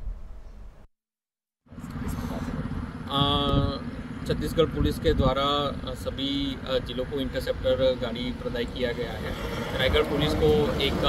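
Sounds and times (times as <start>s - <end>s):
highway traffic rumble: 1.7s - 11.0s.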